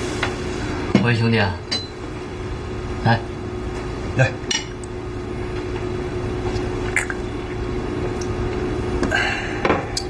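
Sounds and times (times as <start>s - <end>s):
steady faint hum: 0.0s - 10.0s.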